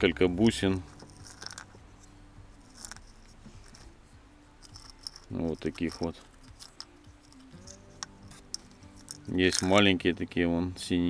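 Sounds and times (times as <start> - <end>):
beads clicking in clay pot: 0.8 - 1.8, 2.6 - 4.0, 4.6 - 10.1.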